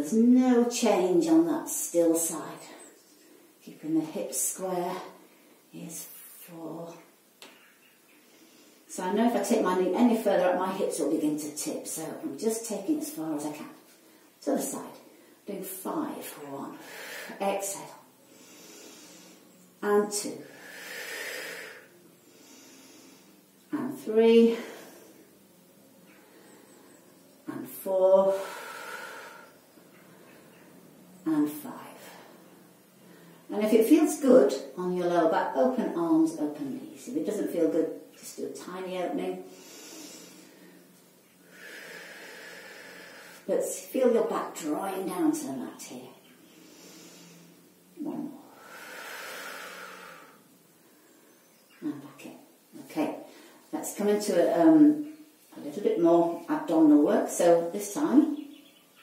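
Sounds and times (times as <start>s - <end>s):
woman exhaling: 20.4s - 23.2s, 28.3s - 29.5s, 48.4s - 50.4s.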